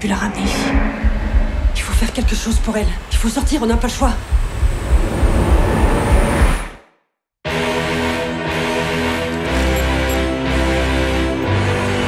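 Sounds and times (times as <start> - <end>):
deep pulsing rumble: 0.0 - 6.6.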